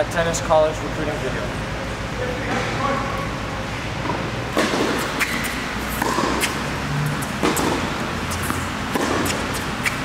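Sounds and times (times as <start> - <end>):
tennis balls hit and bouncing: 4.0 - 10.0.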